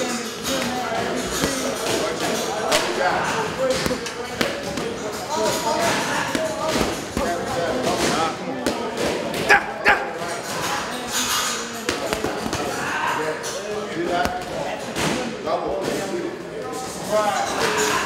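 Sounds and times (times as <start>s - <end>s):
voices talking: 0.0s - 18.0s.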